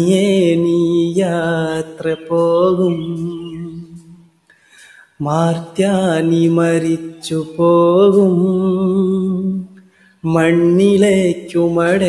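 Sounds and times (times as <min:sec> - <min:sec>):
man singing unaccompanied: 0:00.0 - 0:04.3, 0:05.0 - 0:12.0.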